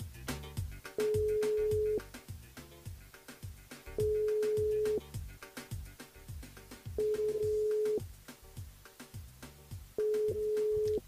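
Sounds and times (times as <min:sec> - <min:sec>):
background music with regular beat: 0:00.0 - 0:11.0
telephone ringback tone: 0:01.0 - 0:02.0, 0:04.0 - 0:05.0, 0:07.0 - 0:08.0, 0:10.0 - 0:11.0.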